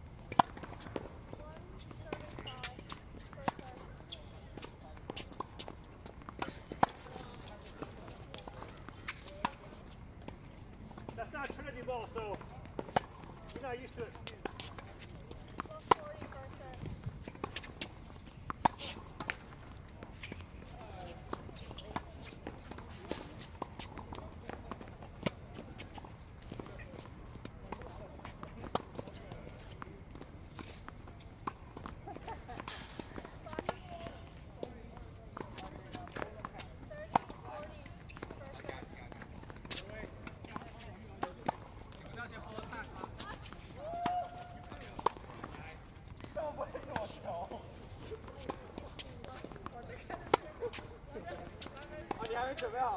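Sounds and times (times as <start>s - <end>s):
tennis balls struck and bouncing: 0.2s - 52.8s.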